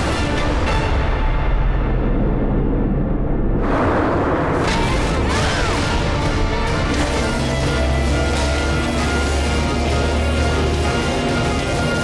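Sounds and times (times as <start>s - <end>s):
dramatic film score: 0.0s - 12.0s
booming impacts: 1.4s - 9.0s.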